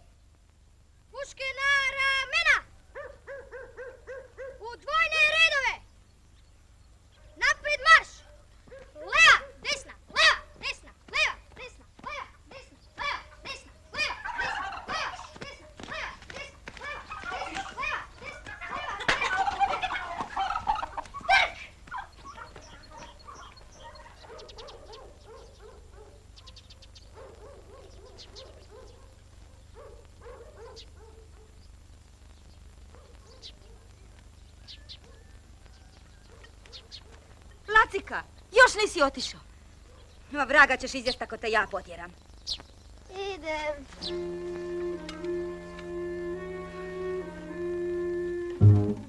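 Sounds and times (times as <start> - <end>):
turkeys gobbling: 13.0 - 16.2, 16.8 - 24.8.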